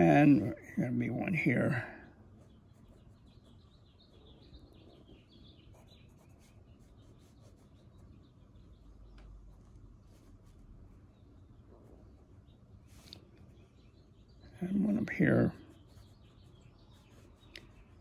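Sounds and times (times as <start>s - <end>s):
faint birds chirping: 0.0s - 18.0s.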